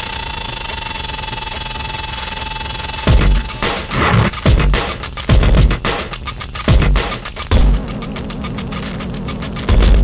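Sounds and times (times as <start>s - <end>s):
ticking electronic percussion: 0.0s - 10.0s.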